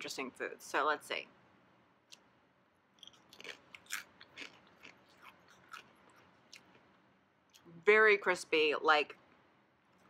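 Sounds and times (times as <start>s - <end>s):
crunchy snack chewing: 3.0s - 6.8s.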